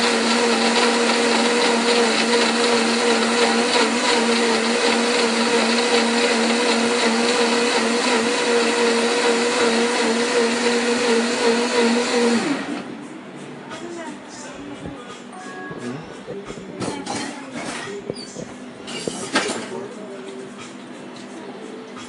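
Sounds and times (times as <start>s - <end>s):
electric blender running: 0.0s - 13.0s.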